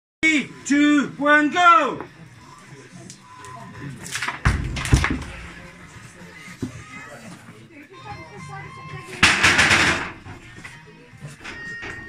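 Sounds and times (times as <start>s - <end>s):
faint background music: 0.2s - 12.0s.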